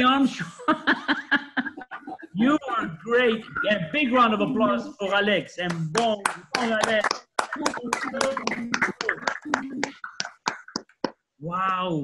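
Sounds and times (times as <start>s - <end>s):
person speaking: 0.0s - 12.0s
hands clapping: 5.6s - 11.8s.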